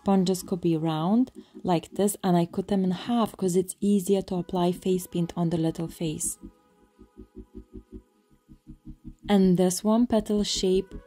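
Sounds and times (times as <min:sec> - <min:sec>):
low pulse: 0:00.0 - 0:11.0
held synth tones: 0:04.3 - 0:09.6.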